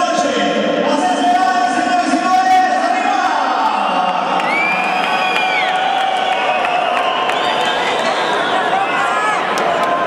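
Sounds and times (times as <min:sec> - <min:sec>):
crowd cheering and shouting: 0:01.0 - 0:10.0.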